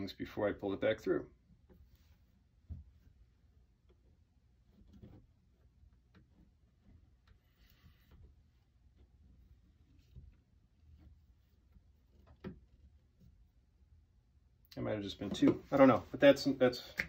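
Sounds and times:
soft thread rustle: 1.3s - 14.6s.

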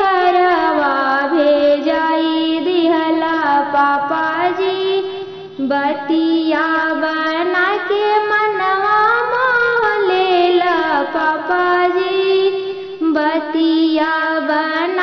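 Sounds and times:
woman singing: 0.0s - 15.0s.

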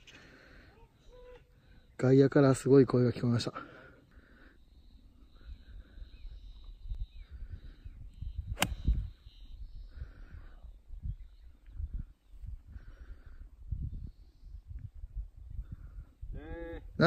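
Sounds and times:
faint bird calls: 0.0s - 2.0s, 3.7s - 13.4s
wind rumble on microphone: 5.4s - 17.0s
golf ball struck click: 8.6s - 8.8s.

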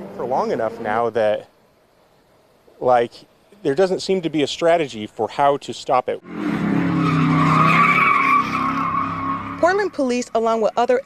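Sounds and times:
car engine at high revs: 0.0s - 1.1s, 6.2s - 10.3s
tyres squealing on pavement: 6.3s - 11.0s.

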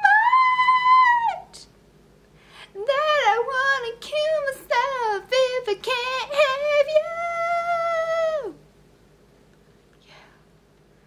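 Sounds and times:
girl singing unaccompanied: 2.8s - 8.6s.

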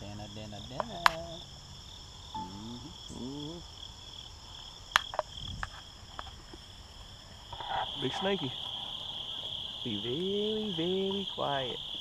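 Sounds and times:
field insects chirring: 0.0s - 12.0s.

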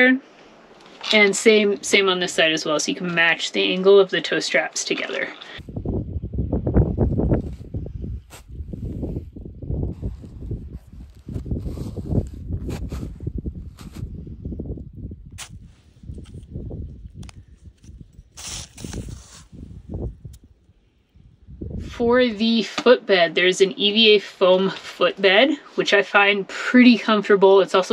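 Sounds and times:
hissing scrape on snow: 18.4s - 19.6s.

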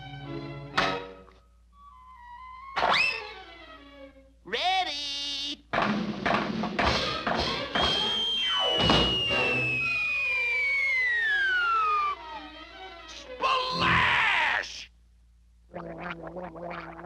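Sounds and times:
falling whistle sliding down: 7.9s - 12.5s.

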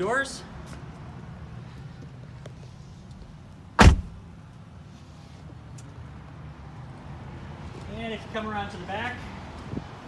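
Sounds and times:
car door shutting: 3.8s - 4.2s.

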